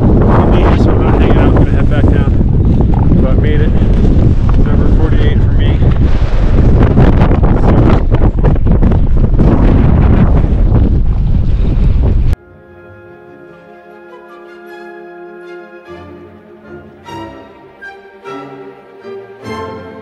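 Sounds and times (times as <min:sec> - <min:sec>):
strong wind on microphone: 0:00.0 - 0:12.4.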